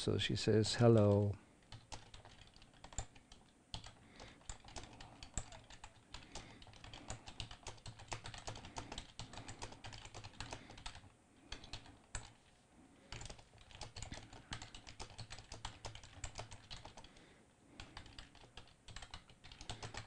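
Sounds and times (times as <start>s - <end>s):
typing on computer keyboard: 1.0s - 12.4s, 13.1s - 17.2s, 17.8s - 20.0s.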